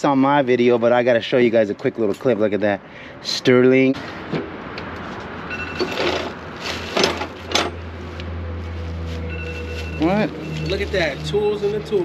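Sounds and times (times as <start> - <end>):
tools rustling and clattering: 4.9 - 8.0.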